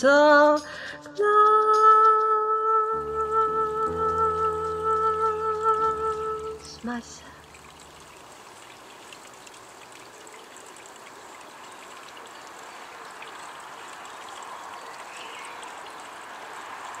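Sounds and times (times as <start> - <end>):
water flowing and trickling: 0.8 - 17.0
faint splashy ticks: 4.0 - 17.0.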